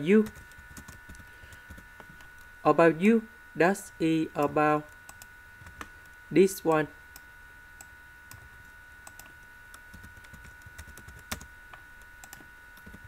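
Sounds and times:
keyboard and mouse clicking: 9.0s - 9.3s, 12.2s - 13.0s.

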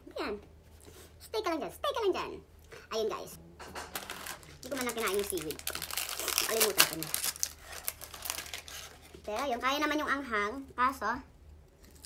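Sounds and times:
high-pitched talk: 1.2s - 3.4s, 4.2s - 7.4s, 9.2s - 11.3s
plastic packaging crinkling: 3.9s - 9.6s.

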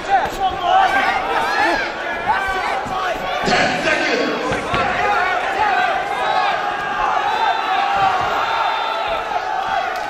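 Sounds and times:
crowd shouting: 0.0s - 10.0s
thud: 8.0s - 8.5s.

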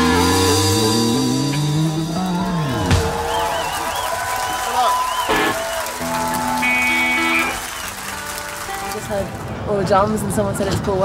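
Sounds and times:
electric guitar ringing out: 0.0s - 4.1s, 5.2s - 9.4s
live rock band: 0.0s - 9.2s
crowd applause and cheering: 1.5s - 9.7s.

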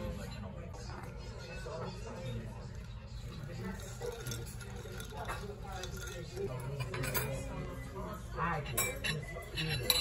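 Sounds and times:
cutlery and dishes clinking: 0.0s - 10.0s
murmur of voices: 0.0s - 10.0s.

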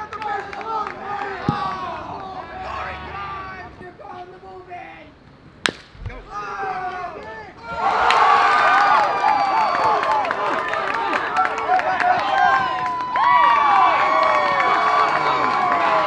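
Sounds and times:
spectators shouting and cheering: 0.0s - 4.2s, 6.1s - 16.0s
bat hitting baseball: 5.6s - 6.4s.

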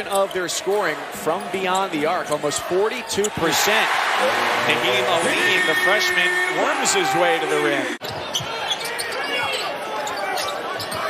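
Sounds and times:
arena crowd noise: 0.0s - 11.0s
sneaker squeaks: 8.0s - 11.0s.

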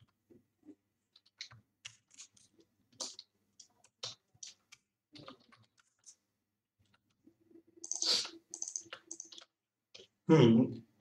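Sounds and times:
computer keyboard typing: 7.8s - 9.5s.

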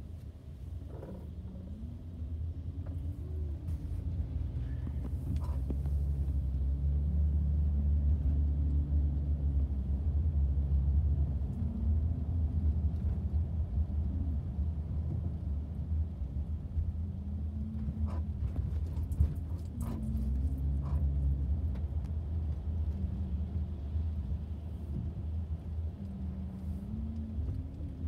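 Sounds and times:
car engine and tyre rumble: 0.0s - 28.0s.

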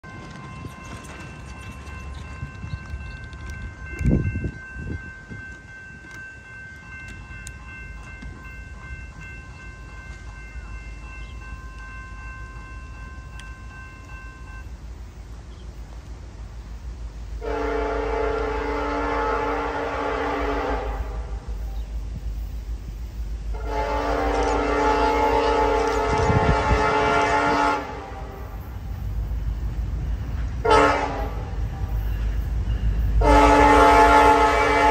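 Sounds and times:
crossing bell ringing: 0.0s - 14.9s, 17.4s - 34.9s
train rumble: 0.0s - 34.9s
locomotive air horn blasts: 17.4s - 21.6s, 23.5s - 28.6s, 30.6s - 32.0s, 33.2s - 34.9s.

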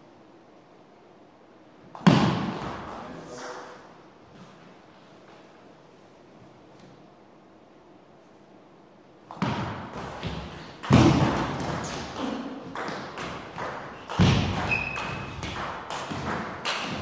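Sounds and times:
heavier thumps: 9.3s - 17.0s.

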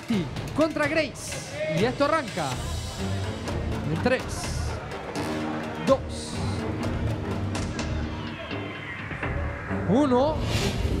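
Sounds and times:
background music with percussion hits: 0.0s - 11.0s.

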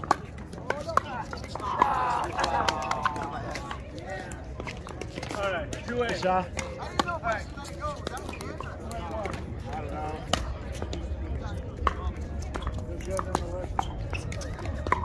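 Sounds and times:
paddles striking balls: 0.0s - 10.9s
players talking: 0.0s - 15.0s.

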